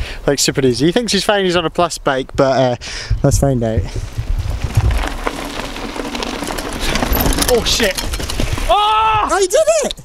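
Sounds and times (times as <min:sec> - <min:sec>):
bike tyres crackling on dirt: 0:03.6 - 0:09.7.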